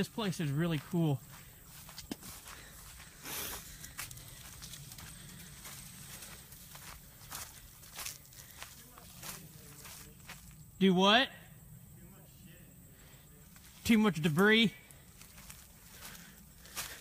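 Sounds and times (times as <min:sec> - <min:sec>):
footsteps through dry leaves: 0:00.0 - 0:10.6, 0:13.5 - 0:17.0
vegetation rustling: 0:00.0 - 0:10.8, 0:13.0 - 0:17.0
twigs cracking: 0:02.0 - 0:08.7.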